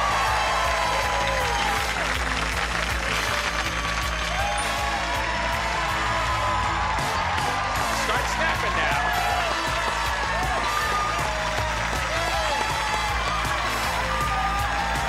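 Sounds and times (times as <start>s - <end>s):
game show theme music: 0.0s - 15.0s
studio audience applause: 0.0s - 15.0s.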